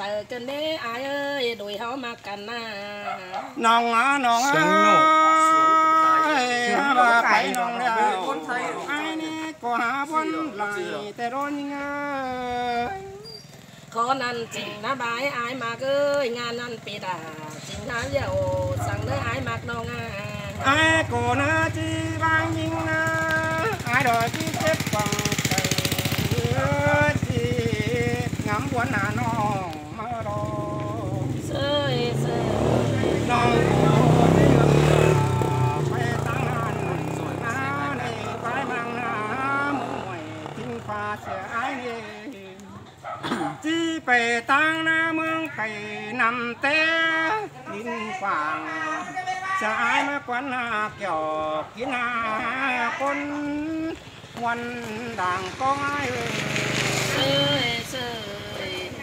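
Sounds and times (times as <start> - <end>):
woman singing folk song: 0.0 - 44.4
motorcycle passing: 0.0 - 59.0.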